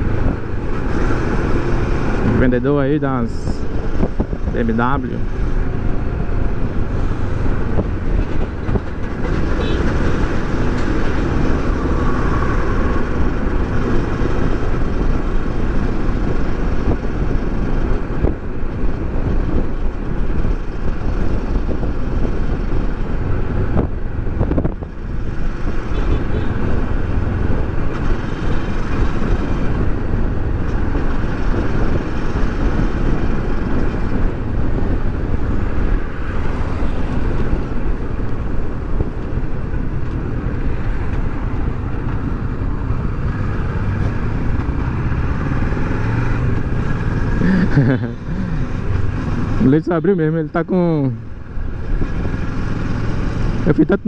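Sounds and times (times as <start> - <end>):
wind rushing over microphone: 0.0 - 54.0.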